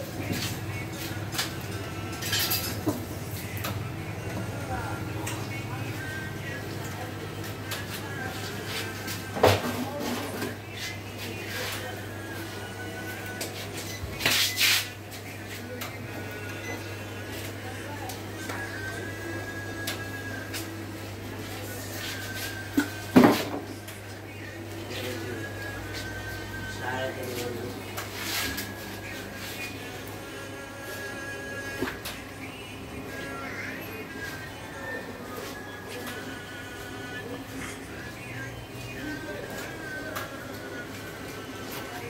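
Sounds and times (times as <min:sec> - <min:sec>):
music: 0:00.0 - 0:42.0.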